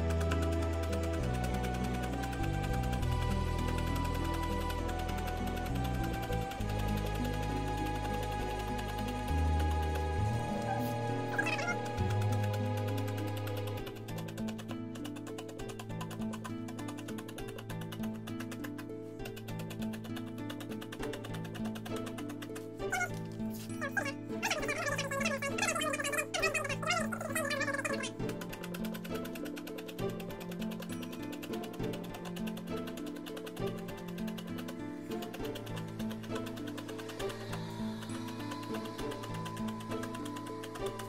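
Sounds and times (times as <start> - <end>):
background music with held notes: 0.0 - 41.0.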